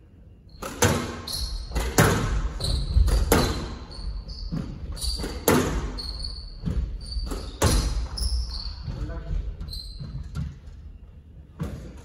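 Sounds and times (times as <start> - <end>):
squash ball hitting rackets and walls: 0.5 - 10.8, 11.6 - 12.0
shoes squeaking on wooden floor: 0.9 - 11.0.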